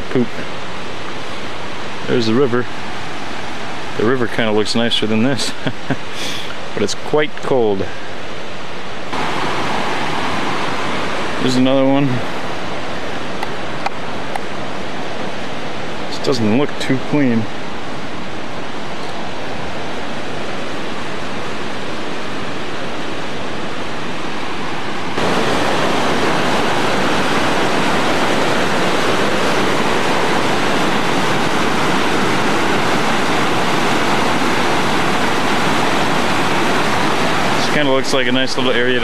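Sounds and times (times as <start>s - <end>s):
river rushing over rocks: 7.7s - 39.0s.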